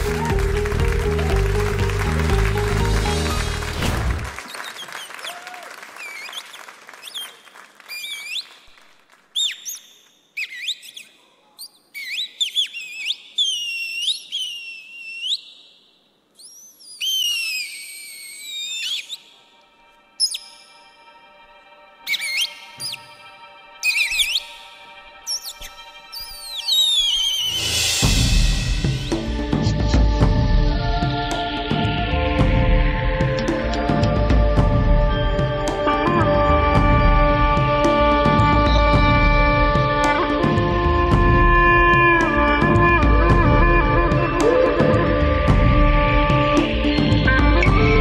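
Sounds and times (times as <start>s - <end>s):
birds chirping and whistling: 7.9s - 8.6s, 9.4s - 19.4s, 20.2s - 20.9s, 22.1s - 28.0s.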